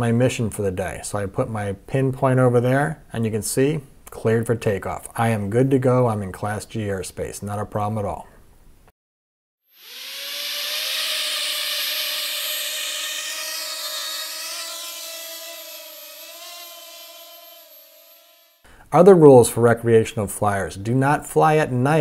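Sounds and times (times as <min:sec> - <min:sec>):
drone propellers buzzing: 0:09.7 - 0:18.6.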